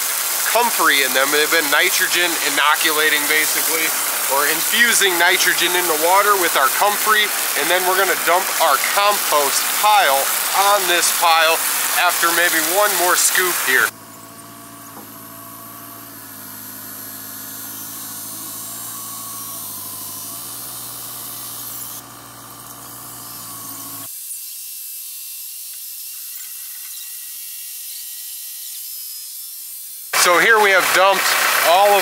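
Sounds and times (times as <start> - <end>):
tractor engine whining: 0.0 - 24.1, 30.2 - 32.0.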